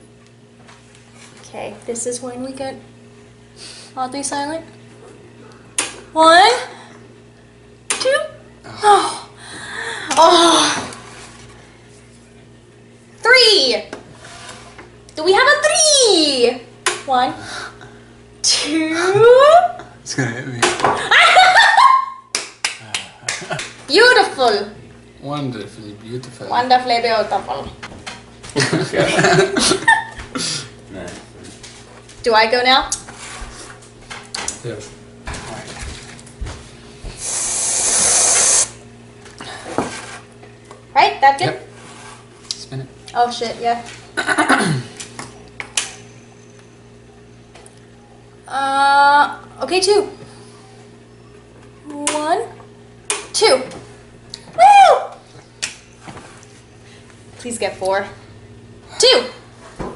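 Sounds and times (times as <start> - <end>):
steady low hum: 0.0 - 59.9
aerosol whipped cream spraying: 37.2 - 38.7.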